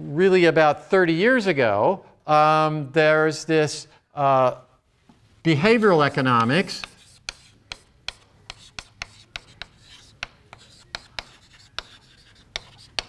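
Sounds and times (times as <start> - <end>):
chalk tapping and scraping: 5.6 - 13.0.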